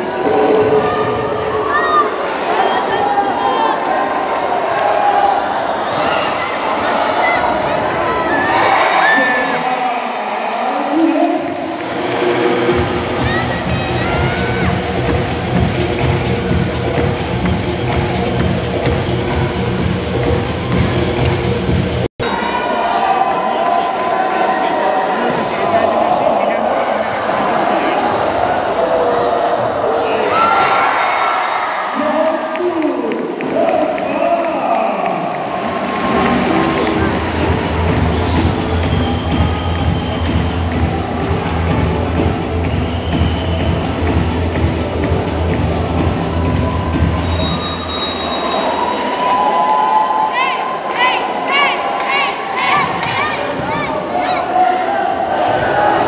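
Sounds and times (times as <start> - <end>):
crowd cheering and chanting: 0.0 - 56.0
music over sound system: 11.4 - 22.1, 36.0 - 48.2.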